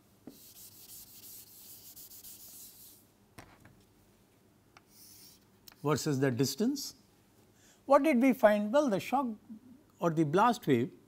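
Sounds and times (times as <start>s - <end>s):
chalk scraping on chalkboard: 0.3s - 3.0s, 4.9s - 5.9s.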